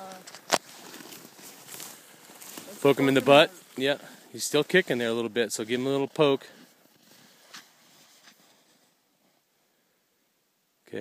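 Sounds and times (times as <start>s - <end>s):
footsteps crunching on snow: 0.0s - 9.4s.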